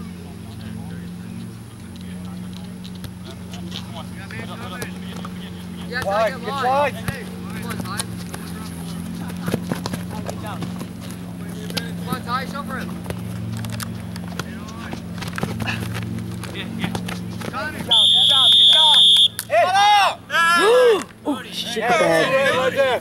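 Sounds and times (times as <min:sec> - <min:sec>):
steady low hum: 0:00.0 - 0:23.0
players shouting: 0:04.3 - 0:10.7, 0:16.6 - 0:23.0
referee's whistle blast: 0:17.9 - 0:19.5.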